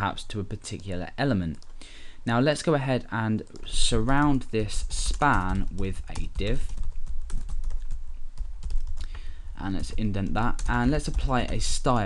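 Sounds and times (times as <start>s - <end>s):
steady low hum: 0.0s - 12.0s
keyboard typing: 4.8s - 12.0s.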